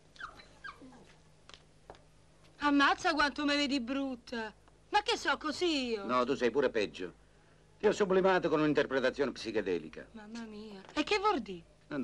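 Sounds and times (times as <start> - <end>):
dog whimpering: 0.2 - 1.2.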